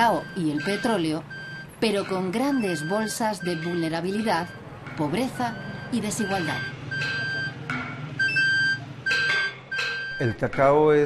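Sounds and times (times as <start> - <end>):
high electronic beeps: 0.0 - 10.4
street noise: 0.0 - 11.0.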